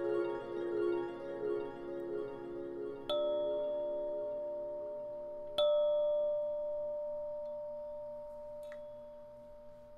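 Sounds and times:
soft meditation music: 0.0s - 9.9s.

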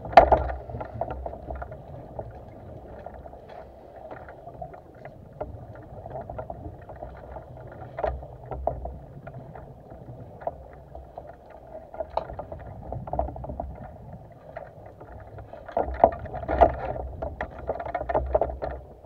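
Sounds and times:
crackle of small clicks: 0.0s - 19.0s.

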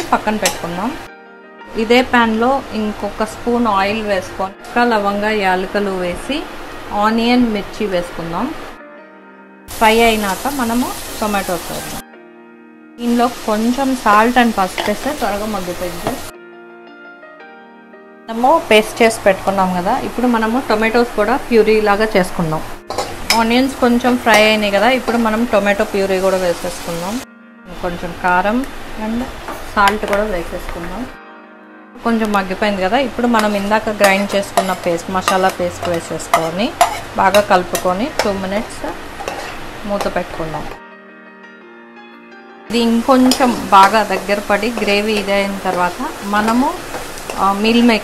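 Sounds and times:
woman talking: 0.0s - 1.0s, 1.7s - 8.6s, 9.8s - 12.0s, 13.0s - 16.2s, 18.3s - 22.7s, 23.3s - 31.2s, 32.0s - 39.0s, 39.8s - 40.8s, 42.7s - 48.0s
quiet background music: 0.0s - 48.0s
sauce sizzling in a pan: 9.7s - 12.0s, 13.0s - 16.3s, 22.3s - 27.2s, 33.4s - 40.4s, 42.7s - 48.0s.

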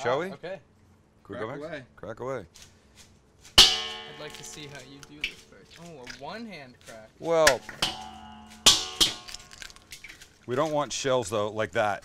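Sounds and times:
metal bowl ringing: 3.6s - 5.5s, 7.5s - 9.8s
eggshells cracking: 9.3s - 10.3s.

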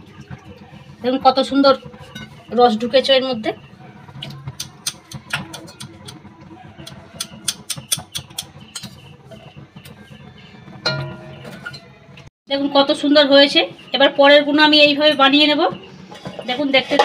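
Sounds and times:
stick tapping steel pot and plate: 6.8s - 9.0s, 10.8s - 11.9s
low steady hum: 8.2s - 17.0s.

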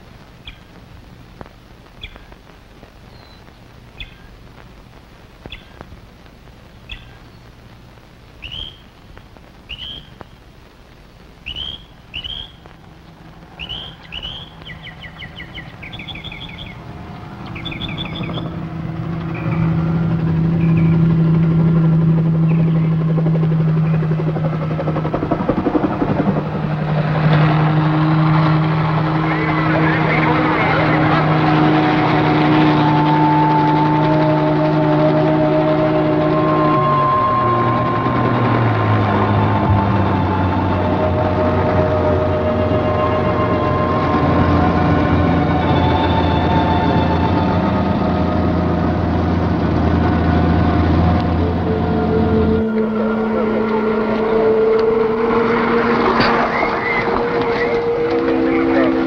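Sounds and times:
birds chirping: 0.4s - 0.8s, 1.8s - 4.4s, 5.3s - 6.0s, 6.6s - 7.6s, 8.3s - 10.5s, 11.4s - 21.1s, 22.4s - 23.2s, 56.4s - 59.0s
helicopter engine and rotor: 17.9s - 27.3s.

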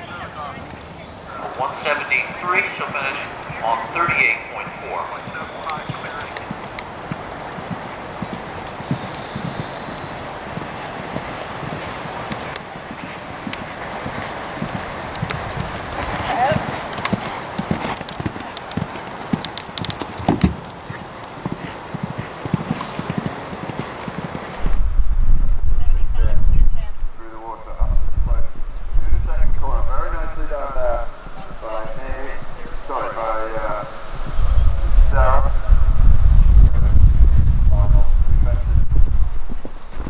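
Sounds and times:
horse hoofbeats on grass: 0.0s - 24.8s
steady outdoor hiss: 0.0s - 40.0s
loud low rumble: 24.6s - 30.4s.

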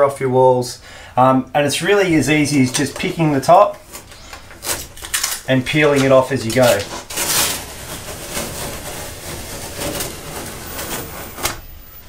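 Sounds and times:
vinyl decal peeling off wall: 1.8s - 12.0s.

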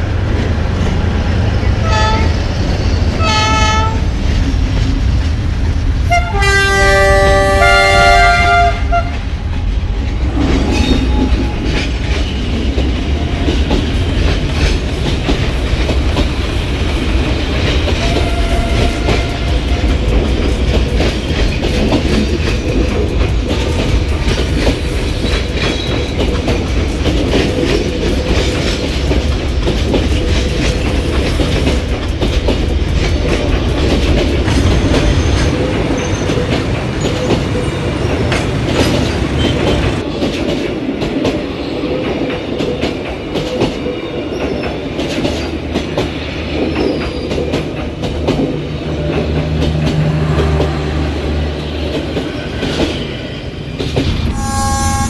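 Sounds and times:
train wheels clicking on rails: 0.0s - 54.4s
train low rumble: 0.0s - 55.0s.

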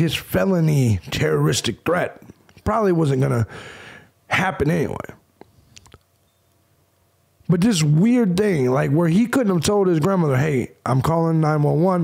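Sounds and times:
mouth clicks and lip smacks: 5.4s - 6.3s.

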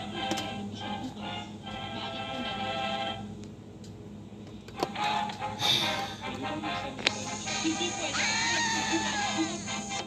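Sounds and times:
film soundtrack hiss and hum: 0.0s - 10.0s.

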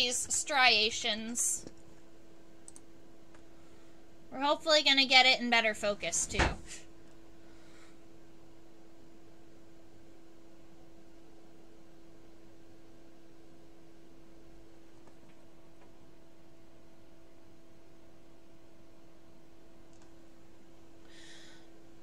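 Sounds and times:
steady electrical hum: 0.0s - 22.0s
faint clicks: 2.6s - 3.5s, 19.9s - 20.2s.

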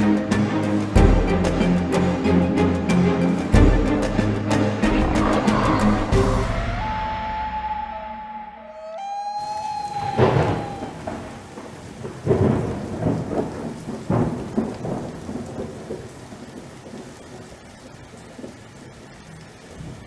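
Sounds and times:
rain hiss: 0.0s - 7.0s, 9.0s - 20.0s
held musical note: 4.8s - 11.4s
thunder rolling: 9.4s - 18.8s.

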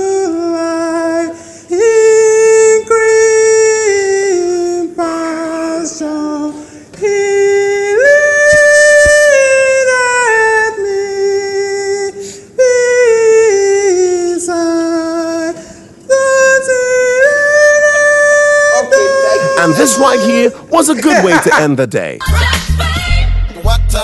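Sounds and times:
person singing unaccompanied: 0.0s - 21.6s.

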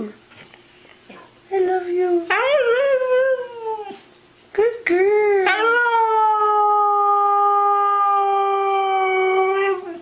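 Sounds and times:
dog howling: 5.4s - 10.0s.

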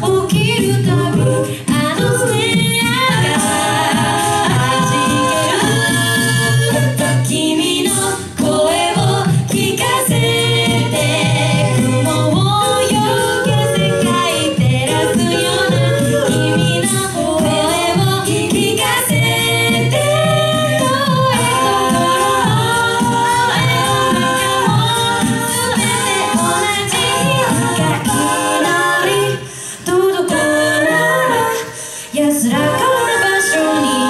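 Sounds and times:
mixed voices singing in harmony: 0.0s - 34.0s
steady low rhythmic pulse: 0.6s - 29.3s.

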